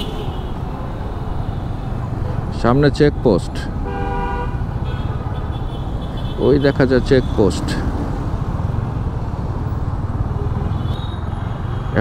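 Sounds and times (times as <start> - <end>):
wind and road noise: 0.0 - 12.0
vehicle horn tooting: 3.9 - 7.0.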